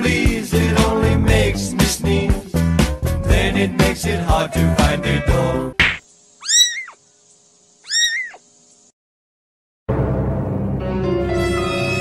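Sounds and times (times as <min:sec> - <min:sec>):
kitten mewing: 0:04.3 - 0:05.6, 0:06.4 - 0:07.0, 0:07.8 - 0:08.4.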